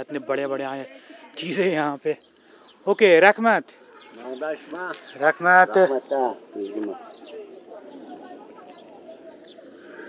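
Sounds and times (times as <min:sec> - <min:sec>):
low outdoor background: 0:00.0 - 0:10.0
man speaking: 0:02.9 - 0:07.1.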